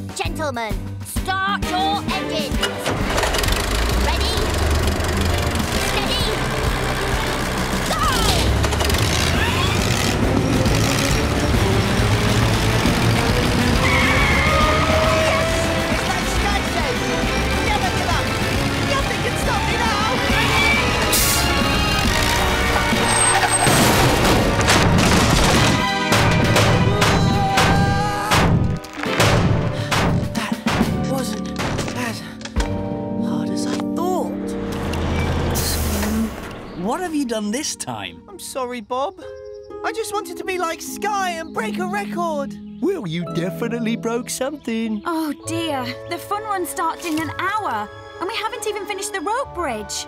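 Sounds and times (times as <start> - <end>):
background music: 0.0 - 50.0
sharp knocks or impacts: 23.7 - 32.8.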